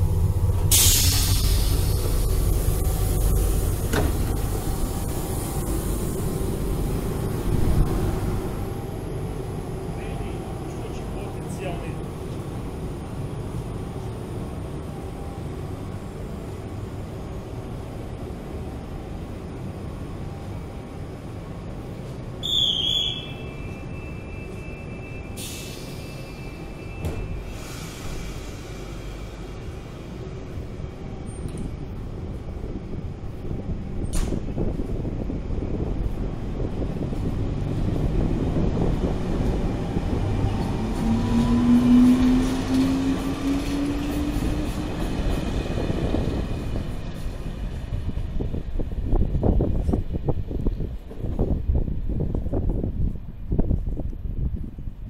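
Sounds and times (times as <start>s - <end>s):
train wheels and motors rumbling: 0.0s - 55.0s.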